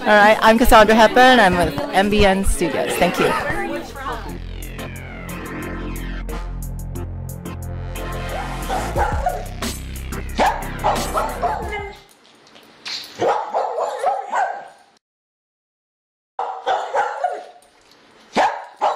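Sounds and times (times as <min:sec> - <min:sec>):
electronic music with heavy bass: 0:02.8 - 0:12.0
dog barking: 0:08.3 - 0:09.5, 0:10.4 - 0:12.0, 0:13.2 - 0:14.8, 0:16.4 - 0:17.6, 0:18.3 - 0:18.9.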